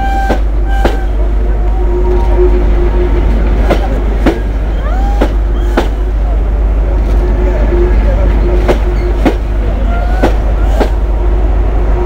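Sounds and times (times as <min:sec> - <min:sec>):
train coaches rumbling past: 0:00.0 - 0:12.0.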